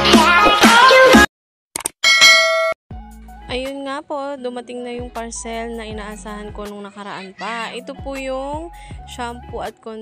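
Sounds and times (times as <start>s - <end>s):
bright bell-like ding: 2.0s - 2.8s.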